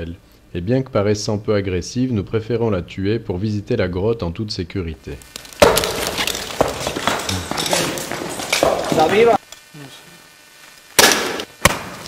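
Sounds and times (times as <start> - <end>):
sharp knocks and clatters: 5.5 - 9.2
indistinct voices: 6.3 - 10.4.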